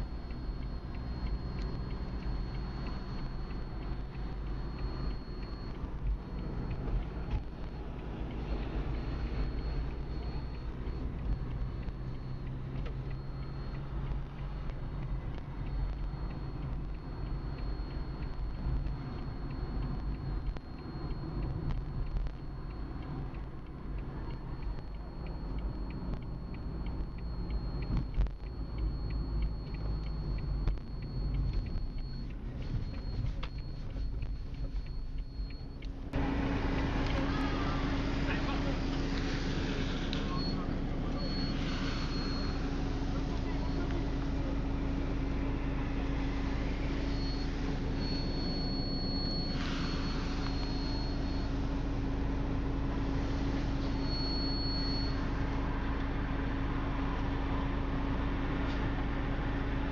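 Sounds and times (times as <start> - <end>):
constant low hum: 0.0 - 59.9
road vehicle noise: 0.0 - 59.9.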